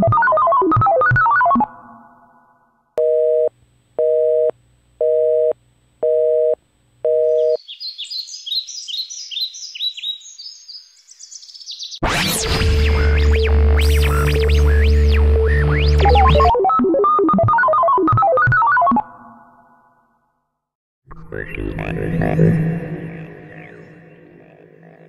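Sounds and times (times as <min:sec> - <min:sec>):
telephone busy signal beeps: 0:03.0 - 0:07.6
loud synthesizer music: 0:12.0 - 0:19.4, 0:21.3 - 0:25.0.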